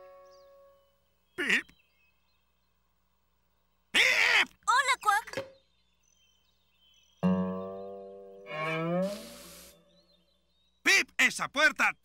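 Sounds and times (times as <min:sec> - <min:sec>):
note sliding upward in pitch: 0:07.2 - 0:09.8
short burst of hiss: 0:09.0 - 0:10.0.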